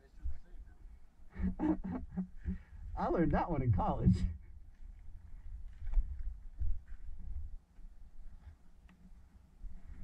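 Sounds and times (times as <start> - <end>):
low rumble on microphone: 0.1 - 8.5
man laughing: 1.4 - 2.3.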